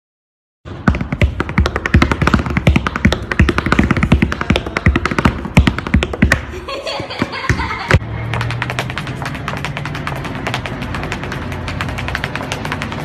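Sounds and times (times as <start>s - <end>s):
tap shoes clicking on hard floor: 0.7s - 13.0s.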